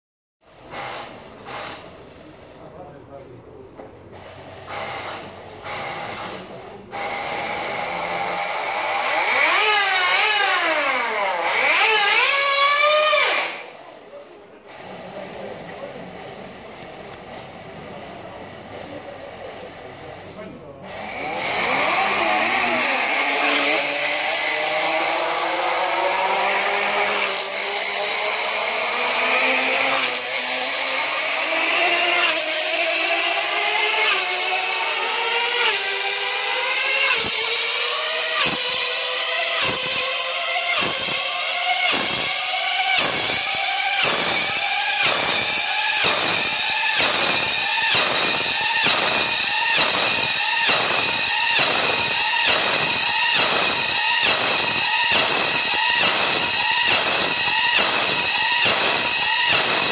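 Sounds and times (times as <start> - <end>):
model engine high-pitched scream: 4.7 - 13.8, 20.8 - 59.9.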